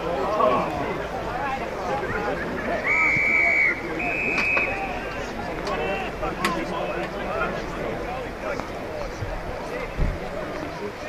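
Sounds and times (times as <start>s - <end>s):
people chattering: 0.0s - 11.0s
whistle blasts: 2.8s - 5.1s.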